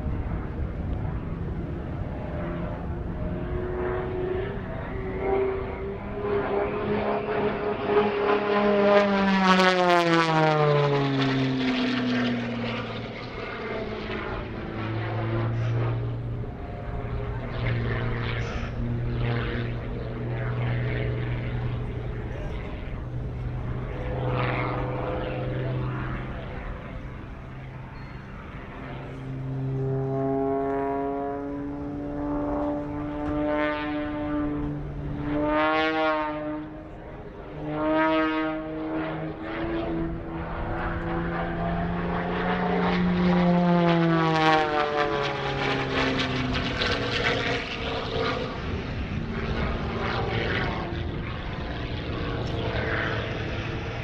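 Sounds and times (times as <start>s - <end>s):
propeller plane engine drone: 0.0s - 54.0s.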